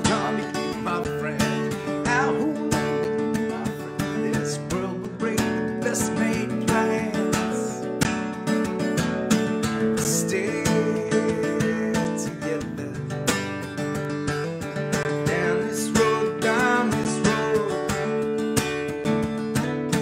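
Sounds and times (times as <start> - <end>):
man singing: 0.0 - 8.0, 9.6 - 13.6, 15.1 - 18.7
acoustic guitar strumming: 0.0 - 20.0.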